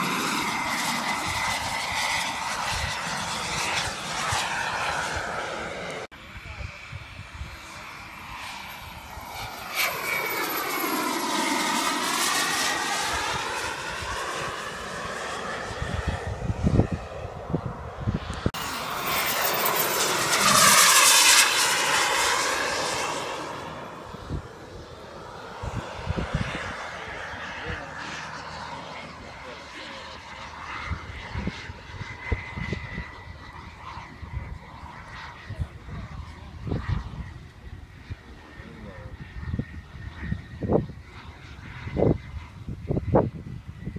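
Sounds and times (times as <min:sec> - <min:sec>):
model jet flying past: 0:00.0 - 0:43.9.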